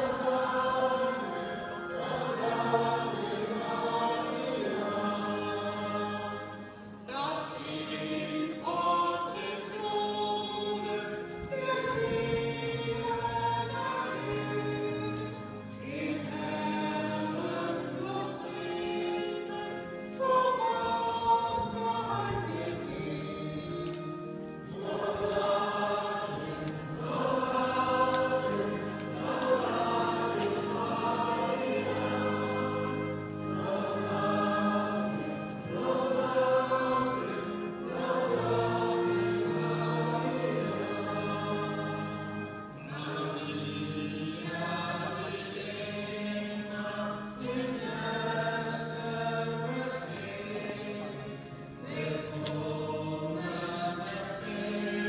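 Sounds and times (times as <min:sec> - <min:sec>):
choir singing a hymn: 0:00.0 - 0:55.0
low sustained chord: 0:00.0 - 0:55.0.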